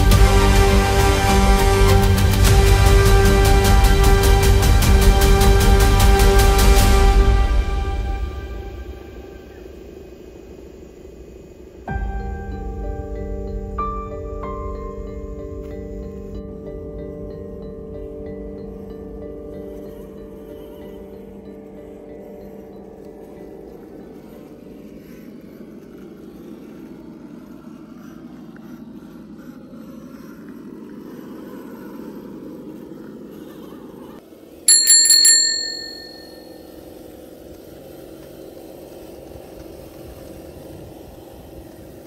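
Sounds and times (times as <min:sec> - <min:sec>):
steady low hum: 0:00.0 - 0:42.0
bright bell ringing: 0:34.7 - 0:36.7.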